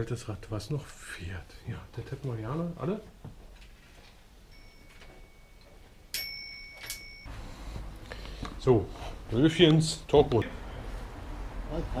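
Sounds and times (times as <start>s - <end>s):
small metal bell ringing: 4.5s - 7.3s.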